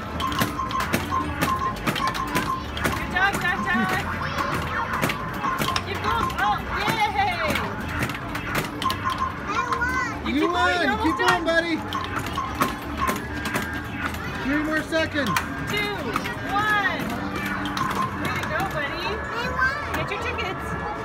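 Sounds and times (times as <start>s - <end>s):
electronic beeping tune: 0.0s - 4.2s, 5.2s - 19.2s
balls knocking against machine: 0.0s - 18.9s
children's voices: 19.3s - 20.0s.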